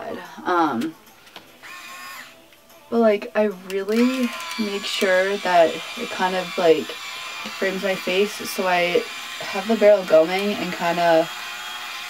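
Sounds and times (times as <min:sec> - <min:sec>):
hair styling iron motor whirring: 0:01.6 - 0:02.4, 0:03.7 - 0:12.0.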